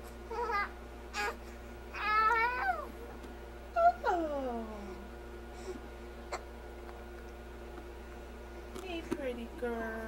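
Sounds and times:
infant cooing: 0:00.3 - 0:02.9.

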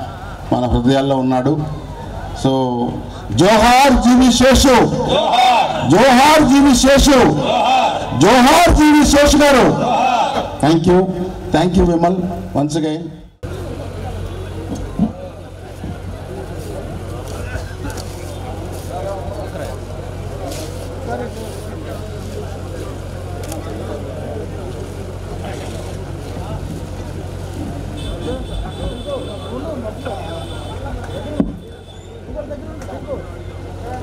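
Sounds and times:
chatter of many people: 0:00.0 - 0:34.0.

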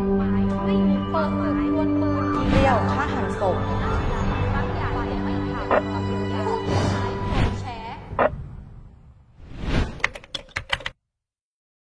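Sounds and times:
keyboard typing clicks: 0:10.0 - 0:11.0.

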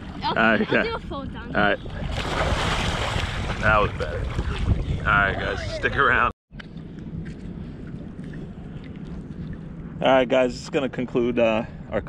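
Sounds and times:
wind rumbling on microphone: 0:00.0 - 0:12.0
small water splashes: 0:01.8 - 0:04.9.

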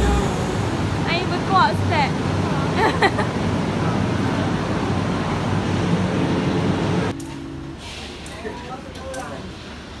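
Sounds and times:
platform noise: 0:00.0 - 0:01.4
electric train humming: 0:00.0 - 0:02.7.

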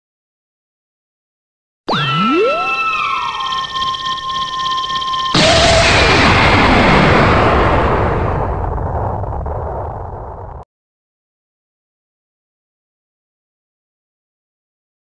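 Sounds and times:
steady high synth chord: 0:01.9 - 0:06.2
synthesized pitch glides: 0:01.9 - 0:06.3
explosion-like blast: 0:05.3 - 0:10.6.

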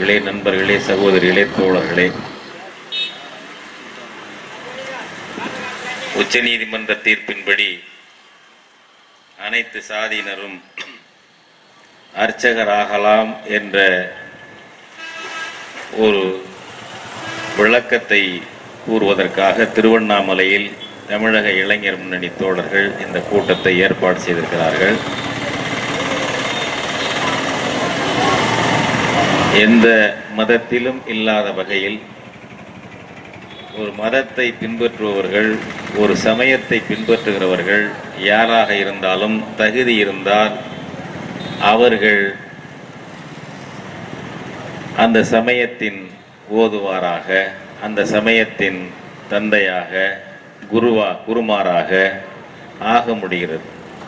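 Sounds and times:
man speaking into a microphone: 0:00.0 - 0:02.4, 0:04.6 - 0:08.0, 0:09.4 - 0:10.8, 0:12.2 - 0:14.3, 0:15.9 - 0:16.5, 0:17.6 - 0:25.1, 0:29.4 - 0:32.1, 0:33.7 - 0:40.8, 0:41.5 - 0:42.6, 0:45.0 - 0:53.7
venue background noise: 0:00.0 - 0:15.0, 0:15.8 - 0:54.0.

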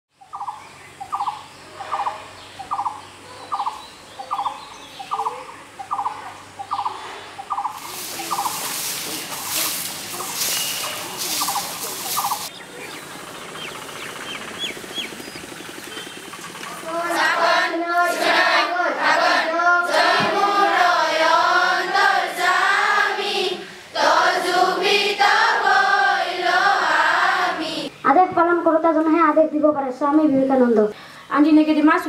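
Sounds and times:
faint high bird chirps: 0:00.2 - 0:08.6
brooms sweeping dry leaves: 0:06.9 - 0:13.0
bird rattling call: 0:07.5 - 0:16.8.

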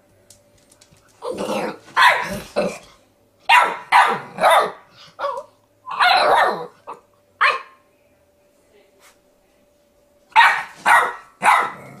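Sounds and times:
puppy barking: 0:02.0 - 0:02.4, 0:03.5 - 0:07.8, 0:10.4 - 0:12.0.

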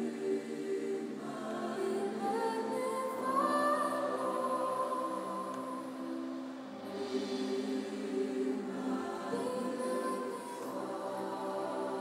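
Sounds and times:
women's choir singing: 0:00.0 - 0:12.0.

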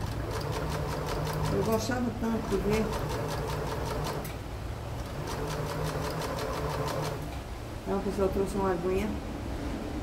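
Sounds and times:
sewing machine stitching: 0:00.0 - 0:04.4, 0:05.0 - 0:07.3.

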